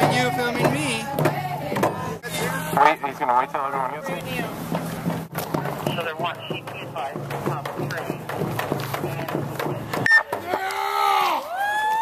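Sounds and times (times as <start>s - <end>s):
frame drum beaten in fast rhythm: 0.0s - 10.1s
voices: 0.0s - 12.0s.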